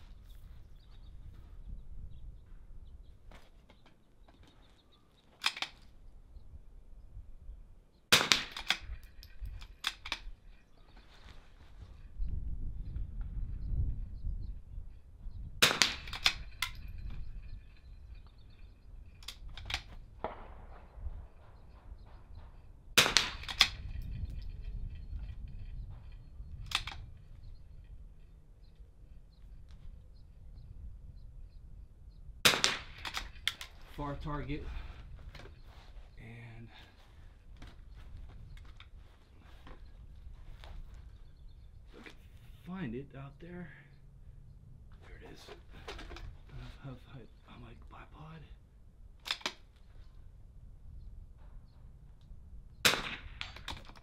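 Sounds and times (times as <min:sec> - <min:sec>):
rifle shots: 0:08.1 - 0:09.0, 0:15.6 - 0:16.5, 0:20.1 - 0:23.9, 0:32.4 - 0:33.6, 0:52.8 - 0:53.9
quiet clicks: 0:26.0 - 0:27.5.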